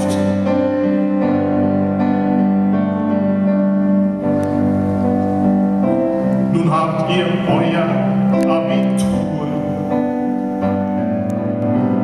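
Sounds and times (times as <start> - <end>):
piano playing sustained chords: 0.0 - 12.0.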